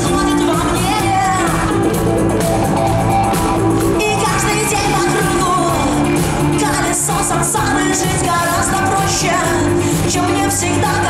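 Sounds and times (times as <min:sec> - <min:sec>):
person singing: 0:00.0 - 0:02.6, 0:03.4 - 0:11.0
electric guitar: 0:00.0 - 0:11.0
rock band playing live: 0:00.0 - 0:11.0.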